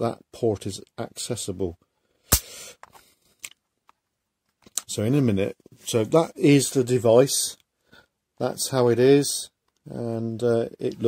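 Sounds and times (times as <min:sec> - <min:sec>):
faint plastic clicks: 0:09.6 - 0:09.9.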